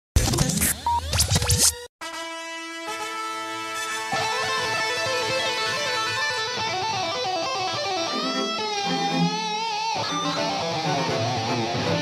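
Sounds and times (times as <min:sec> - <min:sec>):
music intro: 0:02.0 - 0:12.0.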